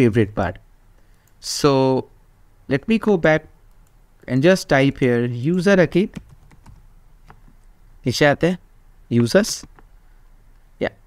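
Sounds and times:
faint keyboard keystrokes: 6.1 - 7.7.

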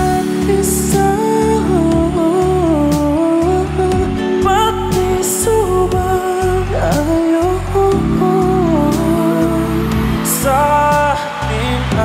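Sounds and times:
instrumental accompaniment: 0.0 - 12.0
man singing slow ballad: 0.0 - 12.0.

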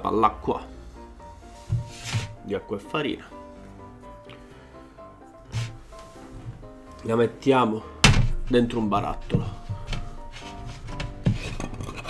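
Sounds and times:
soft slow melody: 0.0 - 12.0.

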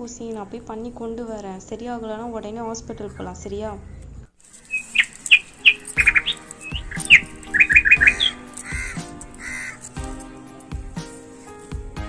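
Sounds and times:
birds chirping: 2.4 - 11.6
music with a beat: 5.5 - 12.0.

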